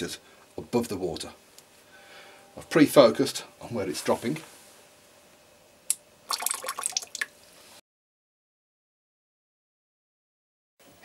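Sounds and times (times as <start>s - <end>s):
water drips splashing into tray: 6.3s - 7.3s.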